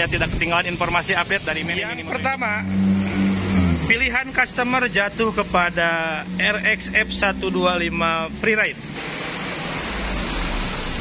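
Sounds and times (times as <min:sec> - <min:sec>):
steady hiss: 0:00.0 - 0:02.6
low rumble: 0:09.6 - 0:11.0.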